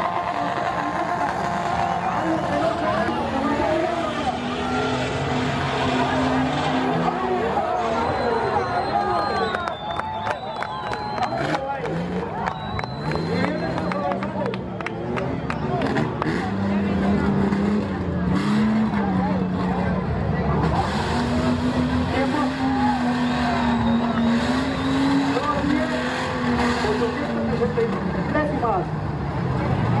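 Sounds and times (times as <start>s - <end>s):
spectators shouting: 0.0s - 16.5s, 20.7s - 26.8s
off-road engine revving: 0.0s - 30.0s.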